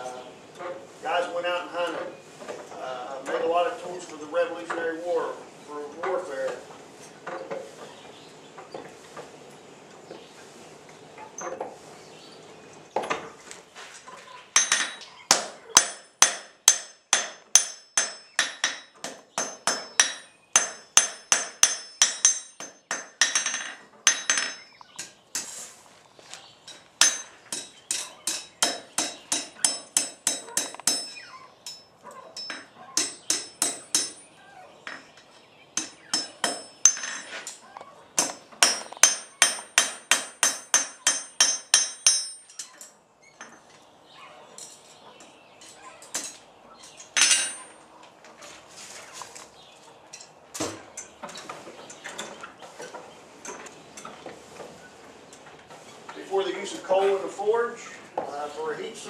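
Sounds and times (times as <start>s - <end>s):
hammer striking iron on anvil: 14.6s - 25.5s, 26.7s - 35.2s, 35.8s - 37.3s, 38.2s - 42.6s.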